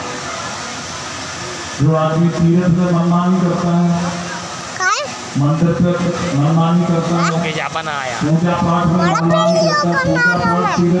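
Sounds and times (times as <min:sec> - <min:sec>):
people talking over one another: 0:01.8 - 0:11.0
children's voices: 0:04.8 - 0:05.2, 0:08.8 - 0:11.0.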